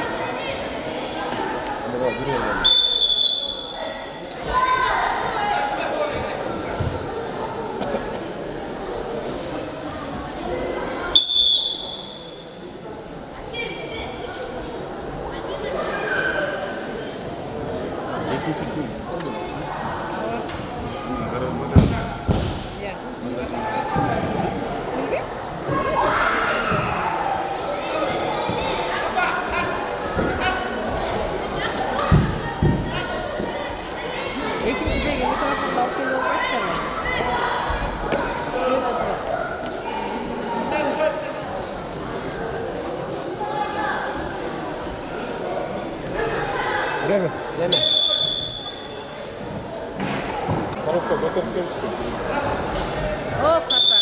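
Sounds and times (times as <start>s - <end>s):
people shouting and yelling: 0.0s - 7.0s, 25.6s - 41.3s
referee's whistle: 2.6s - 3.8s, 11.2s - 12.4s, 47.7s - 48.9s, 53.7s - 54.0s.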